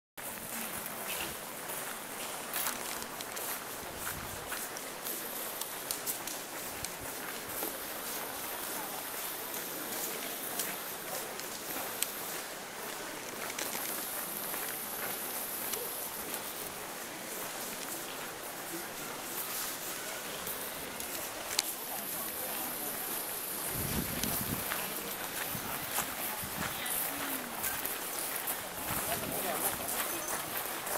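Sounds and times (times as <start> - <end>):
faint voices: 0.2 - 30.9
footsteps crunching on gravel: 0.2 - 30.9.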